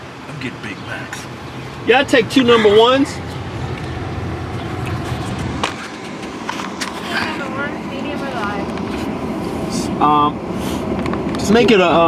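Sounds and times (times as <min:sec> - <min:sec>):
car idling from inside: 0:00.6 - 0:11.2.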